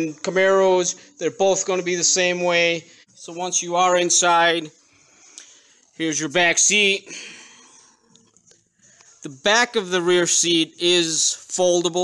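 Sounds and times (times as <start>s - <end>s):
faint breath-like noise: 4.8s - 6.0s, 7.0s - 9.2s.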